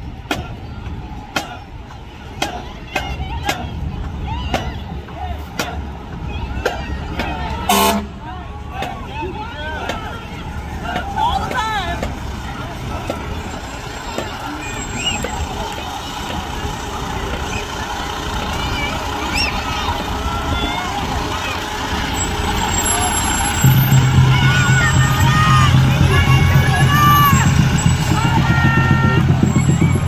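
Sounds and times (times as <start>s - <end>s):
people talking: 0.0s - 30.0s
vehicle engines rumbling: 0.0s - 30.0s
vehicle horn blast: 7.7s - 8.2s.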